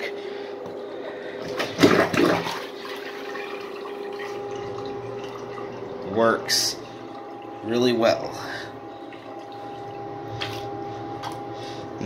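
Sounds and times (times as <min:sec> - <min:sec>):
faint steady hum: 0:00.0 - 0:12.0
small toilet flushing: 0:00.0 - 0:12.0.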